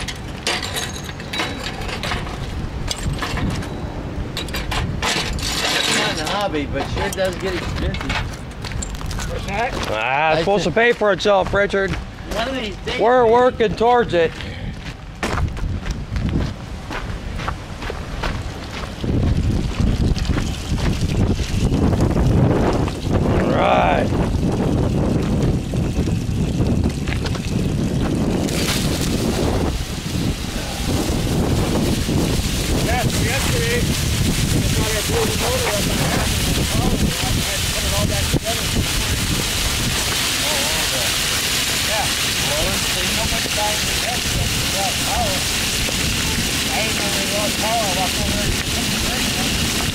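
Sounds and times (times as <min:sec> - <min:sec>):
wind buffeting microphone: 0:01.4 - 0:40.6, 0:41.3 - 0:49.9
water sizzling on hot metal: 0:04.9 - 0:11.7, 0:18.8 - 0:49.9
microphone handling noise: 0:14.7 - 0:40.3.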